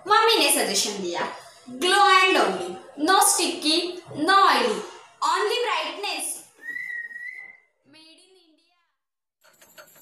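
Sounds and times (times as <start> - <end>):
whistled note: 6.6 - 7.7.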